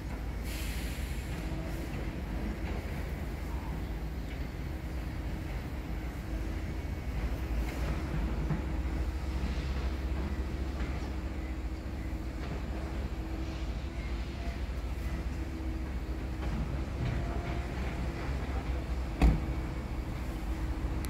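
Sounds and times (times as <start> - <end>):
low outdoor rumble: 1.0 - 21.0.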